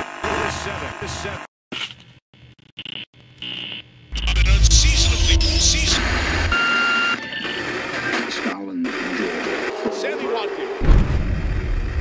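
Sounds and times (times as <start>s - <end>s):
mixed broadcast sound: 2.4s - 10.0s
electronic beep tone: 4.1s - 8.2s
intro music with heavy bass: 4.2s - 8.1s.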